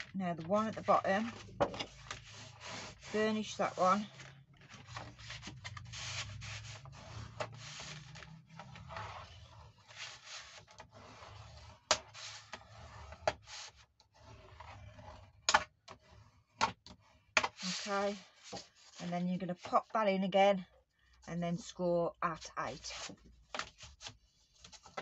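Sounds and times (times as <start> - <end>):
bone folder scraping cardstock: 0.7 - 19.0.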